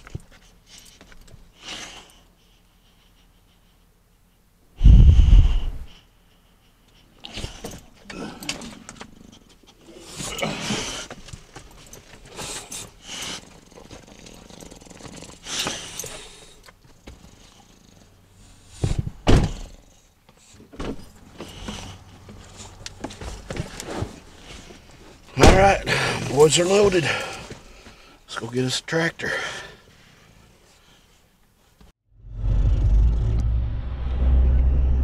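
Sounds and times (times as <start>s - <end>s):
knocks and rustling on seats: 18.8s - 19.8s, 20.6s - 26.4s.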